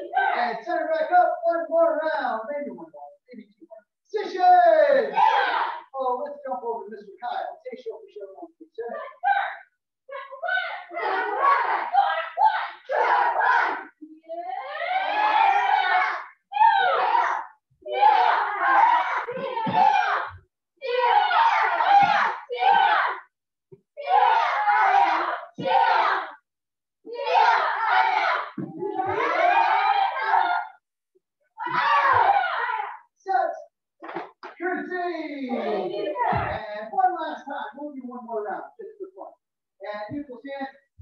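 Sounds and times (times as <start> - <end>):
group shouting in bursts: 5.1 - 5.9, 10.5 - 23.2, 24.0 - 26.4, 27.1 - 30.8, 31.6 - 33.0
long group yell: 5.1 - 5.9, 10.5 - 13.9, 14.5 - 23.2, 24.0 - 26.4, 27.1 - 30.8, 31.6 - 33.0.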